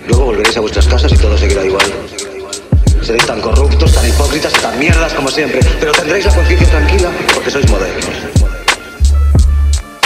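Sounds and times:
deep kick drums: 3.9s - 5.9s
deep bass note: 6.3s - 7.2s.

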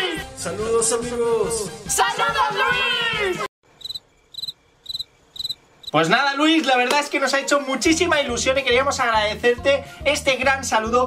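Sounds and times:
cricket chirps: 3.7s - 6.1s.

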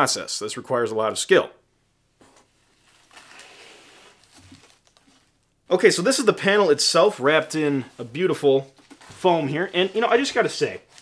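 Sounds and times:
packaging rustling: 2.4s - 5.6s, 7.5s - 11.0s.

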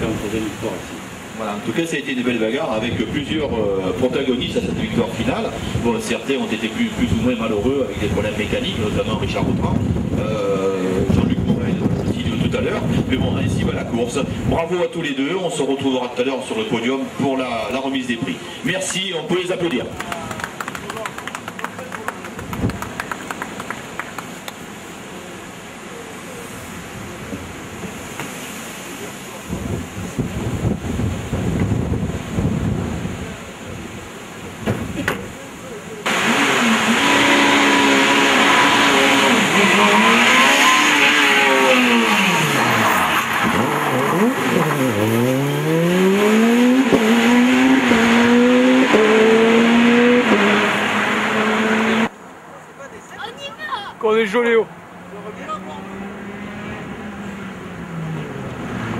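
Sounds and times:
rally car engine revving: 2.8s - 14.5s, 36.0s - 52.1s, 55.0s - 58.9s.

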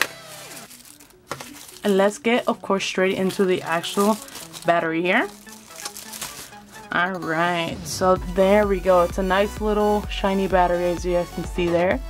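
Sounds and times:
plastic wrap crinkling: 0.0s - 7.2s.

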